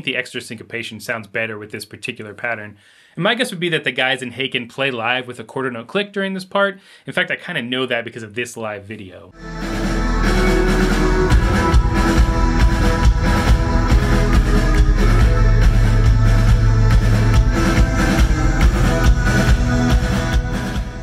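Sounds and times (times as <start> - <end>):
heavy metal band playing live: 9.4 - 21.0.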